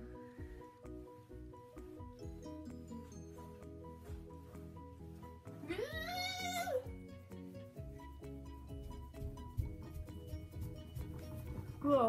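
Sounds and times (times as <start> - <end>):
background music: 0.0 - 12.0
high meow-like cry: 5.7 - 6.8.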